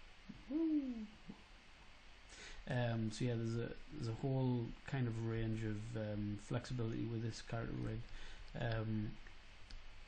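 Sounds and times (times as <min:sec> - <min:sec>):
man saying ooh: 0:00.3 - 0:01.2, 0:08.6 - 0:09.2.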